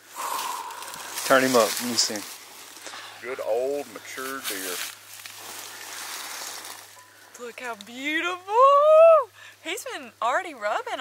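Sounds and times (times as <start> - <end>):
dry leaves rustling: 0.1 - 8.4.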